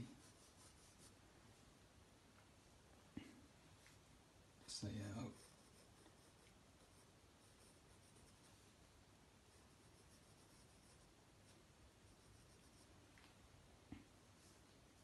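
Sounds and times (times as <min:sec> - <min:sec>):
pencil scratching on paper: 0:00.1 - 0:01.2, 0:05.1 - 0:08.5, 0:09.5 - 0:12.9.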